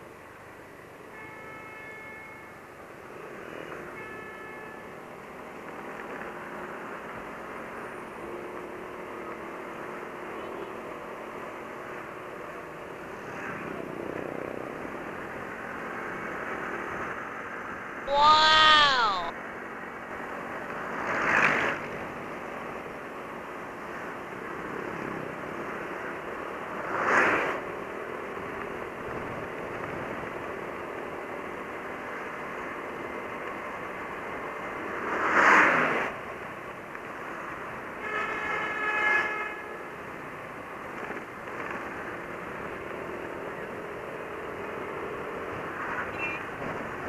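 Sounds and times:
vehicle horn: 1.2 - 2.5, 3.9 - 4.8, 38.0 - 39.8
scooter road noise: 3.0 - 4.0, 4.8 - 38.4, 39.6 - 47.0.

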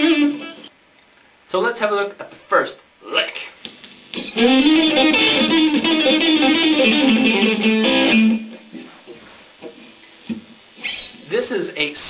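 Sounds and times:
electric guitar lick: 0.0 - 0.7, 3.7 - 8.7.

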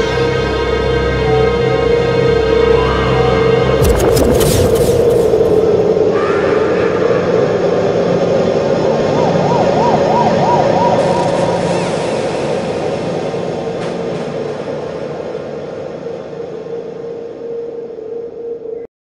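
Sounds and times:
siren-like wavering tone: 9.0 - 12.3.

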